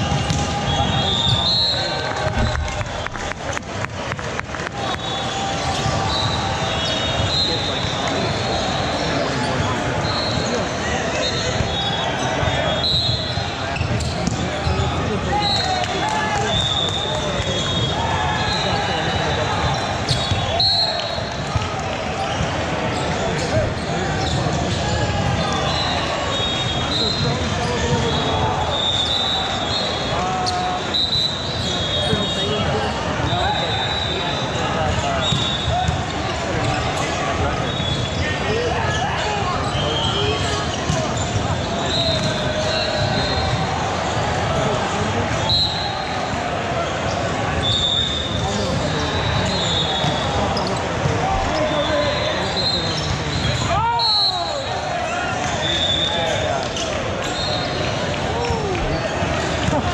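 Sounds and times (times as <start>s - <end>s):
sneakers squeaking on floor: 0.0s - 3.4s, 4.9s - 15.8s, 16.5s - 21.3s, 22.1s - 59.9s
babble of voices and shouts: 0.0s - 59.9s
balls struck and bouncing: 0.1s - 1.5s.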